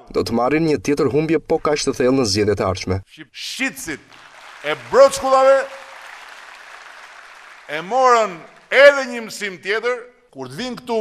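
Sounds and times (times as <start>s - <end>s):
man's voice: 0.0s - 4.0s, 4.7s - 5.8s, 7.7s - 11.0s
audience applauding: 3.9s - 9.4s.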